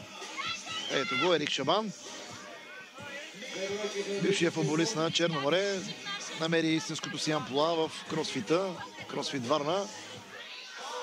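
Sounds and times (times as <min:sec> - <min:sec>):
background music: 0:00.0 - 0:11.0
faint voices: 0:00.0 - 0:11.0.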